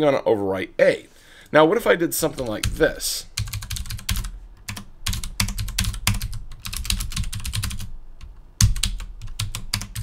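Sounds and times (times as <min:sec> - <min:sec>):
typing on computer keyboard: 0:03.4 - 0:07.9, 0:08.6 - 0:10.0.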